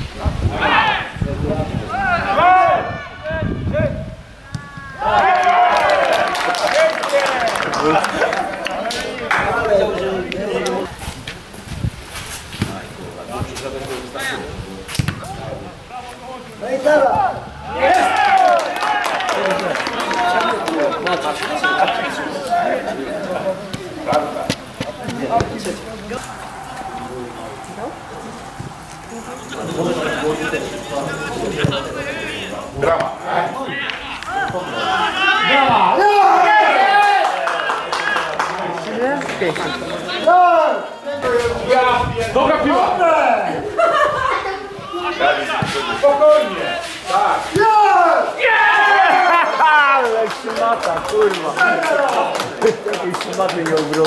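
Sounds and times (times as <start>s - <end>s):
players shouting: 1.8s - 10.9s, 15.0s - 52.6s
football kicks thudding: 15.0s - 15.3s.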